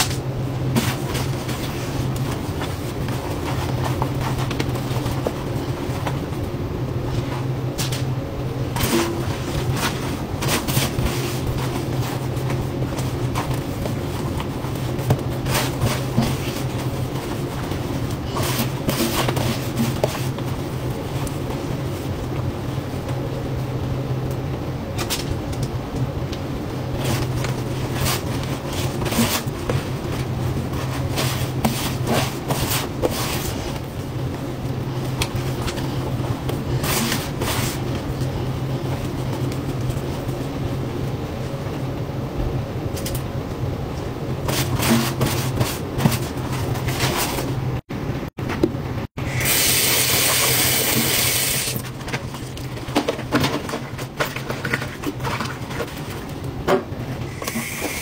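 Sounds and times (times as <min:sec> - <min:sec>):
scrubbing a steel sink: 0:27.0 - 0:33.8.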